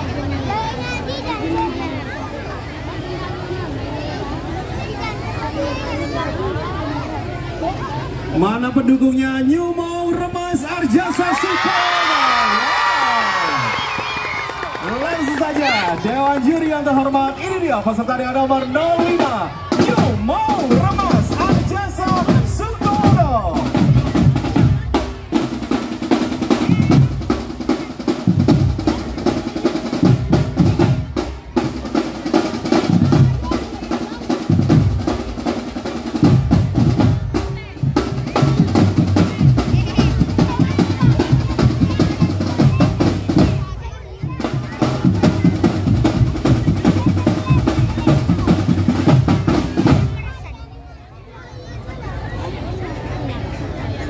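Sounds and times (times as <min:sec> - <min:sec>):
marching snare and bass drums: 0:13.5 - 0:50.6.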